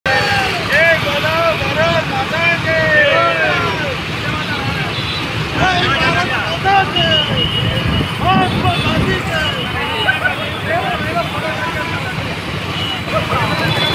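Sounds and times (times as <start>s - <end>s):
men shouting: 0.1s - 12.2s
motorcycles and scooters rumbling: 0.1s - 13.9s.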